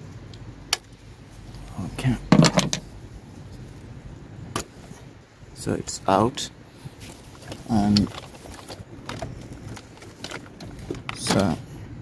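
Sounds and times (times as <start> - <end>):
faint steady background noise: 0.0 - 12.0
engine parts clicking and knocking: 2.0 - 2.9, 7.0 - 11.7.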